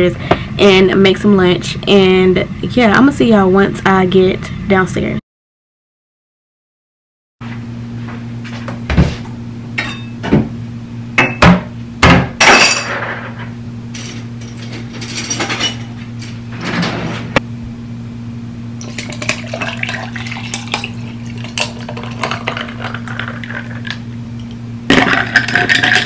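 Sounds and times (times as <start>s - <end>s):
steady low hum: 0.0s - 5.2s, 7.4s - 26.0s
glassware and dishes clinking: 9.8s - 10.2s, 12.4s - 13.2s.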